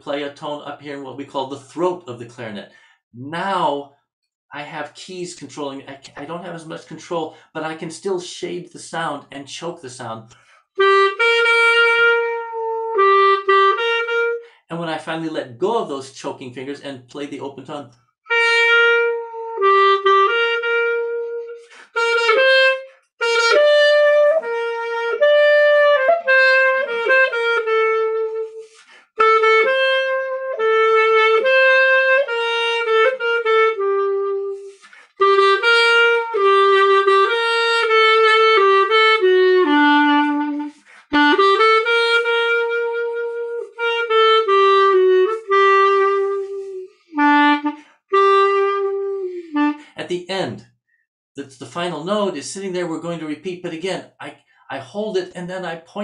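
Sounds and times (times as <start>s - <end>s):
player breathing: 2.7s - 3.0s, 10.4s - 10.7s, 21.6s - 22.0s, 28.6s - 29.2s, 34.6s - 35.2s, 40.7s - 41.2s
clarinet playing slow melody: 10.8s - 14.6s, 18.3s - 49.9s.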